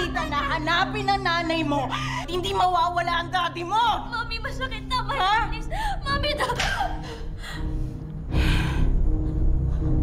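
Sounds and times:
tense background music: 0.0 - 10.0.

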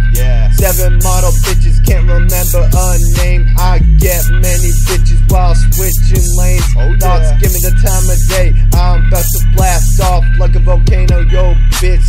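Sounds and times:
man rapping: 0.0 - 12.0
trap beat with heavy sub-bass: 0.0 - 12.0.

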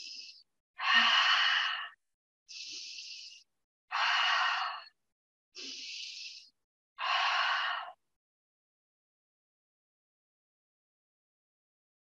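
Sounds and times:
woman inhaling: 0.0 - 5.0, 5.6 - 8.0.

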